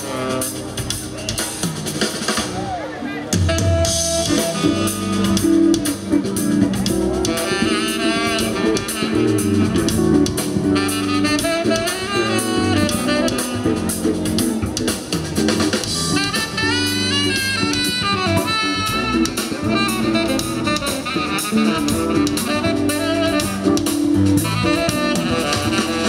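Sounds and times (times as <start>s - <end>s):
saxophone melody: 0.0s - 1.4s, 3.0s - 26.0s
drum kit: 0.0s - 26.0s
keyboards: 0.0s - 26.0s.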